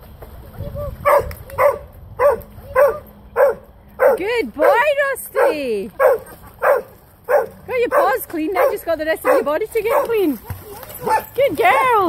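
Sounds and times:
dog barking: 1.0s - 4.8s, 5.4s - 10.1s, 11.0s - 11.3s.

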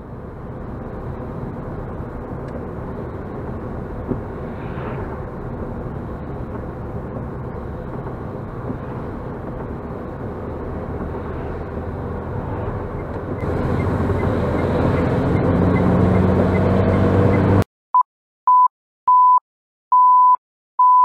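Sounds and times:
car road and engine noise: 0.0s - 17.7s
turn signal ticking: 5.5s - 17.6s.

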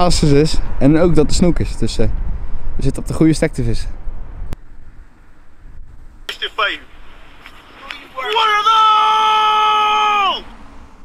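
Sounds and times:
person's long drawn-out shout: 8.4s - 10.5s.

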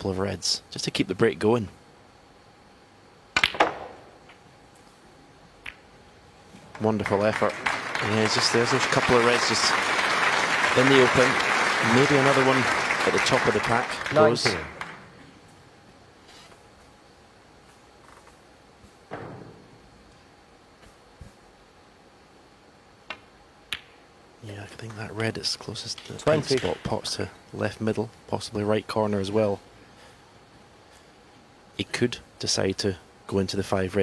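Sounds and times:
quiet arena hush: 0.0s - 34.0s
cue tip striking ball: 3.4s - 4.1s
sudden thump: 19.1s - 19.7s.

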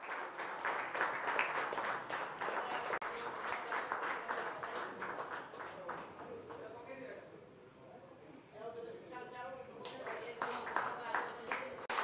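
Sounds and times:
people applauding: 0.0s - 6.7s, 9.8s - 12.0s.

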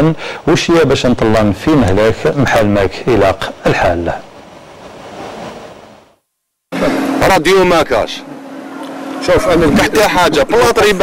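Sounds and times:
steady background hiss: 0.0s - 6.2s.

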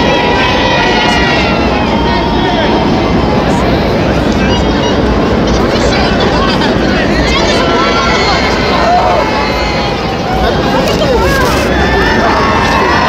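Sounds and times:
low rumble of street noise: 0.0s - 13.0s
spectators chattering and calling out: 0.0s - 13.0s.

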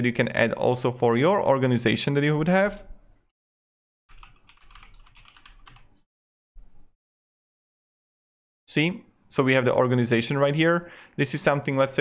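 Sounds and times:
typing on computer keyboard: 4.1s - 6.0s.

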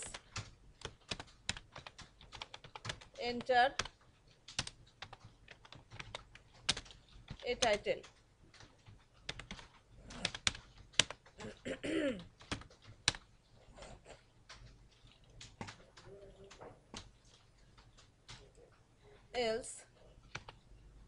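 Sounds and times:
computer keyboard typing: 0.0s - 11.6s, 12.2s - 13.6s, 14.3s - 18.6s, 20.2s - 20.6s.

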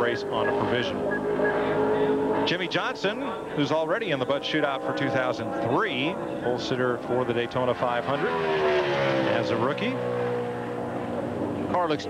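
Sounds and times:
race car engine at speed: 0.0s - 12.0s.

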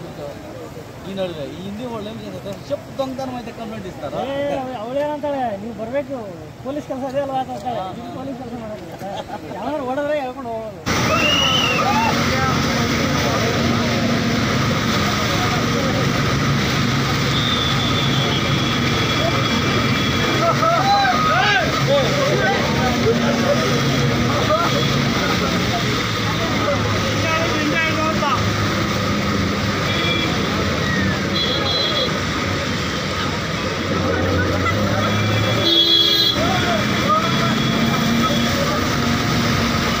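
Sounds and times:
floodwater rushing: 0.0s - 40.0s
traffic noise: 0.0s - 40.0s
vehicle horns: 17.2s - 20.5s, 29.7s - 32.5s, 34.6s - 38.9s
people calling out: 17.3s - 25.2s.

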